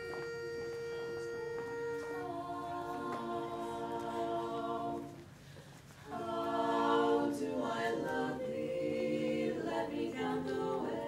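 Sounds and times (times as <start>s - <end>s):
female quartet singing in harmony: 0.0s - 11.0s.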